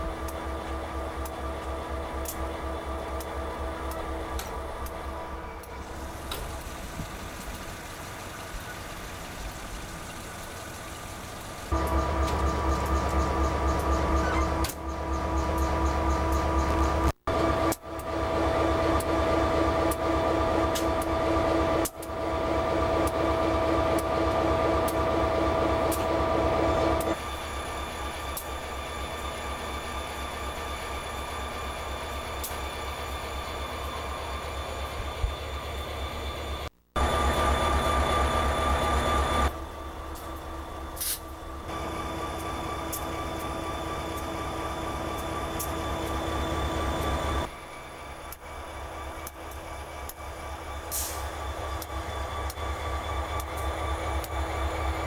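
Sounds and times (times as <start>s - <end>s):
rhythmic low rumble of train: 0.0s - 55.0s
train wheels squealing on rails: 12.0s - 17.1s, 22.9s - 55.0s.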